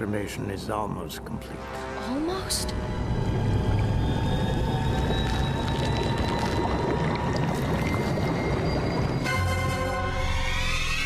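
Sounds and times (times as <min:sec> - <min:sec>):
dense low rumble drone: 0:02.6 - 0:10.9.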